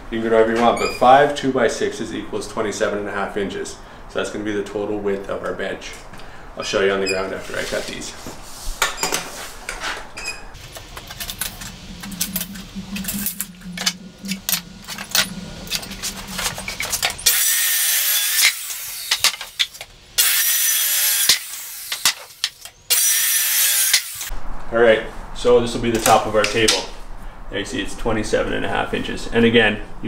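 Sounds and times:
circular saw cutting wood: 10.6s - 19.6s, 20.2s - 24.3s.

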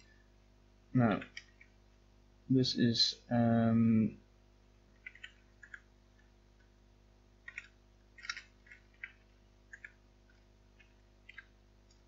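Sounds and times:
faint steady hum: 0.0s - 12.0s
keyboard typing clicks: 1.2s - 1.7s, 5.0s - 6.3s, 7.4s - 12.0s.

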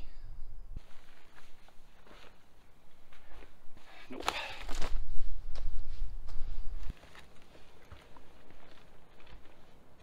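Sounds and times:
footsteps on dirt and rock: 0.8s - 10.0s.

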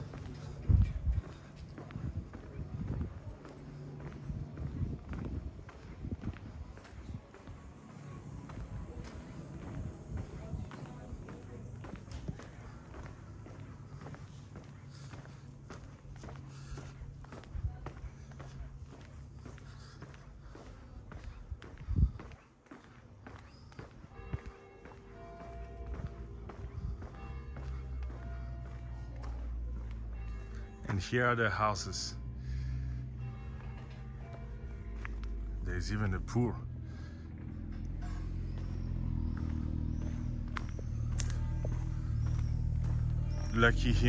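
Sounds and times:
faint music: 0.0s - 44.0s
footsteps on pavement: 0.0s - 44.0s.

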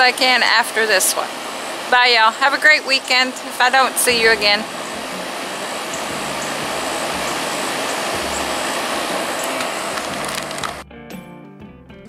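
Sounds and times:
air conditioner running: 0.0s - 10.8s.

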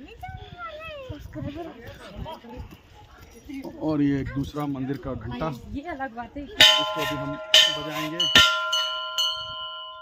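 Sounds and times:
hand bell ringing: 6.6s - 10.0s.

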